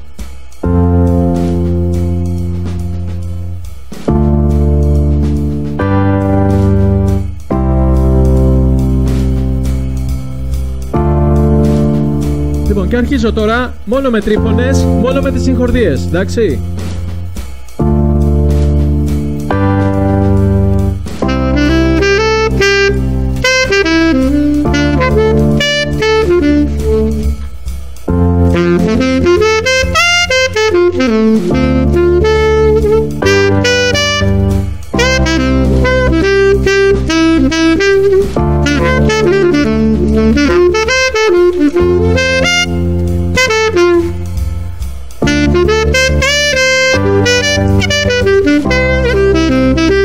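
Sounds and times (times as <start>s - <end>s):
saxophone improvising runs: 19.5s - 27.7s, 28.3s - 44.6s, 45.2s - 50.0s.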